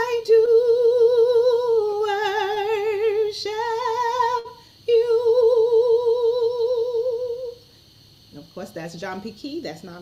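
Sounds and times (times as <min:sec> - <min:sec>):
woman singing unaccompanied: 0:00.0 - 0:07.7.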